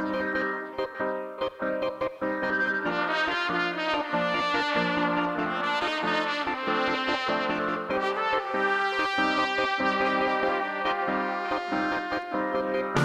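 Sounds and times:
live band: 0:02.4 - 0:13.0
trumpets playing melody: 0:02.6 - 0:13.0.

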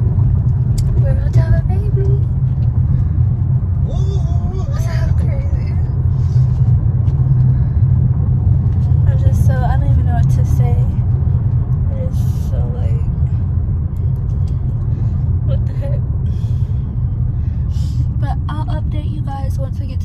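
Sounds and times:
car road and engine rumble: 0:00.0 - 0:20.0.

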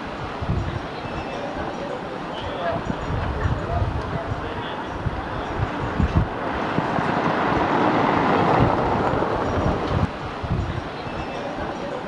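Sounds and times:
street noise: 0:00.0 - 0:12.0
wind buffeting microphone: 0:00.0 - 0:12.0.

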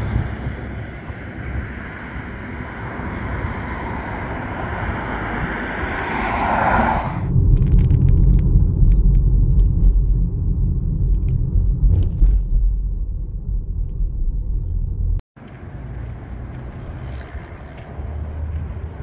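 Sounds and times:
passing cars: 0:00.0 - 0:07.7, 0:15.4 - 0:19.0
car interior rumble: 0:00.0 - 0:19.0.

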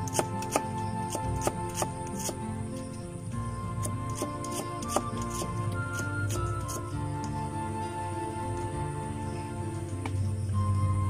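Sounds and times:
knife chopping onion on wood: 0:00.0 - 0:02.4, 0:03.8 - 0:06.8
background music: 0:00.0 - 0:11.0.

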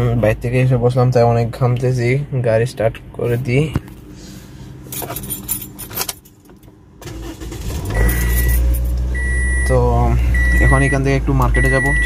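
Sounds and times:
car engine starting and idling: 0:04.8 - 0:12.0
car keys jangling: 0:04.9 - 0:09.0
dashboard warning chime: 0:07.9 - 0:12.0.

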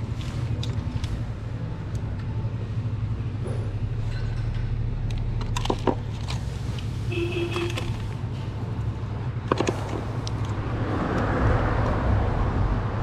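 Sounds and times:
low mechanical hum: 0:00.0 - 0:10.7.

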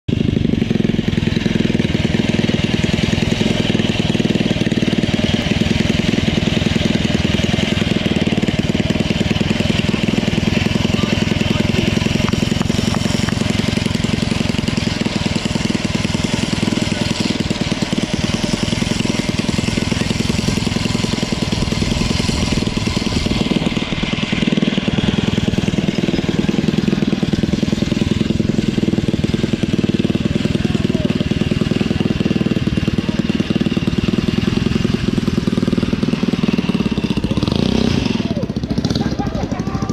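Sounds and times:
engine running loud: 0:00.0 - 0:39.9.

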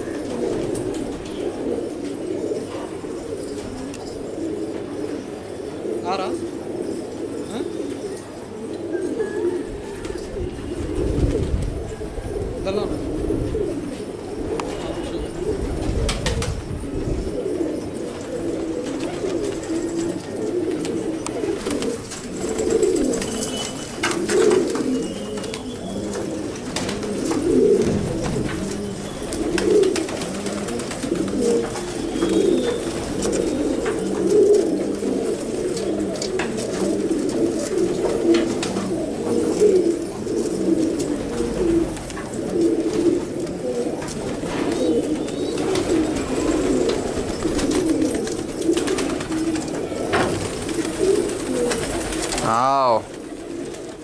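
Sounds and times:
pigeons cooing: 0:00.0 - 0:54.0.

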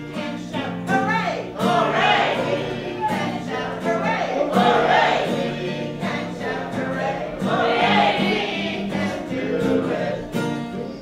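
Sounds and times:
acoustic guitar: 0:00.0 - 0:11.0
children and adults singing: 0:01.6 - 0:11.0.

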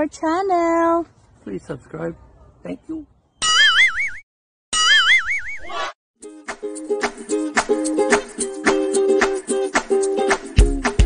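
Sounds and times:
cartoon boing sound effect: 0:04.8 - 0:05.7.

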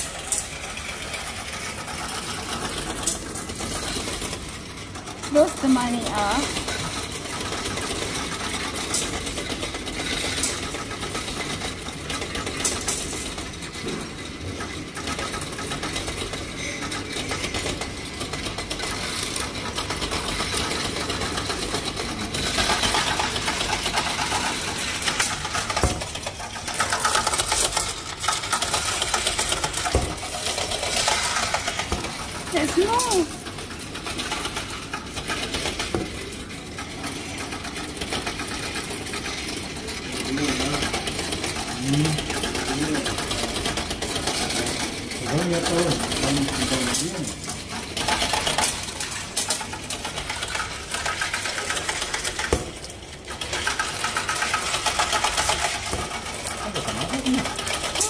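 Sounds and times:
coin machine rattling: 0:00.0 - 0:58.0.

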